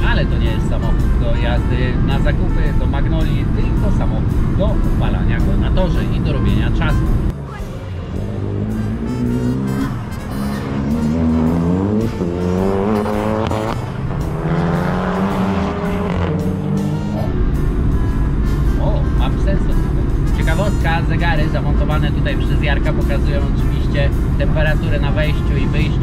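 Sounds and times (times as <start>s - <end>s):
background music: 0.0s - 26.0s
race car engine accelerating: 7.0s - 26.0s.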